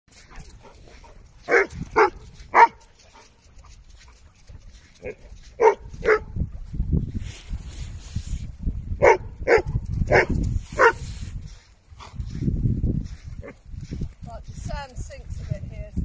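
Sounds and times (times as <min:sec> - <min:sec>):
dog barking: 0:01.5 - 0:02.8, 0:05.0 - 0:06.3, 0:09.0 - 0:11.0.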